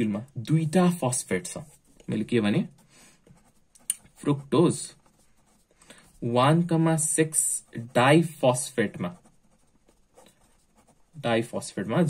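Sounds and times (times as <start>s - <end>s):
marker pen writing on paper: 0.7s - 12.0s.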